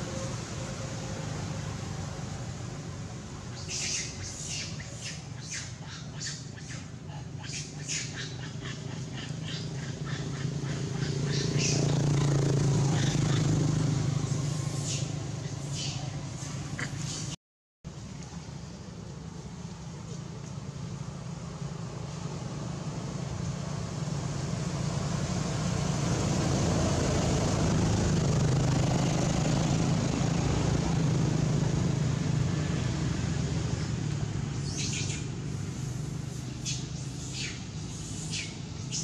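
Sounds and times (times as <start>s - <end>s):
vehicle engine rumble: 0.0s - 39.0s.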